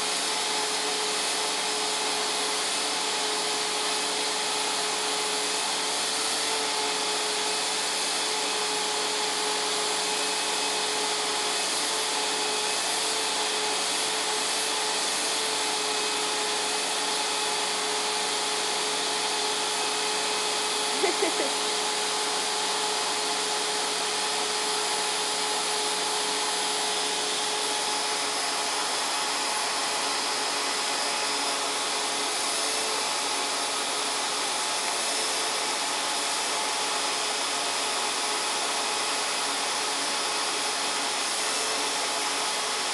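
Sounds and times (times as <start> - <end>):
vacuum cleaner running: 0.0 - 42.9.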